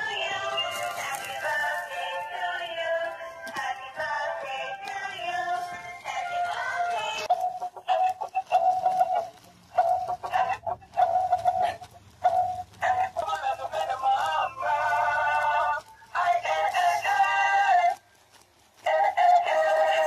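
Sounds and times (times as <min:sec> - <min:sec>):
toy playing electronic song: 0:00.0 - 0:17.9, 0:18.9 - 0:20.0.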